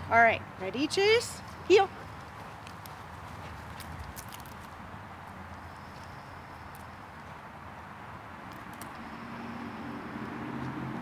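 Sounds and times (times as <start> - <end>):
outdoor background noise: 0.0 - 11.0
footsteps on grass: 1.4 - 6.1.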